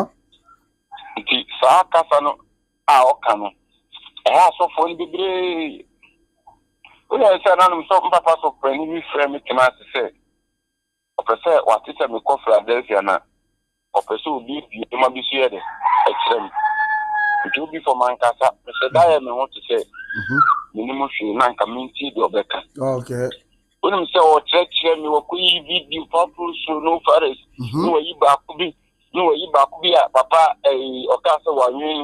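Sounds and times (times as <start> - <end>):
man speaking: 1.0 - 5.8, 7.1 - 10.1, 11.2 - 13.2, 14.0 - 16.4, 17.5 - 32.0
person talking over telephone: 1.0 - 5.8, 7.1 - 10.1, 11.2 - 13.2, 14.0 - 16.6, 17.4 - 32.0
rooster crowing: 15.6 - 17.5.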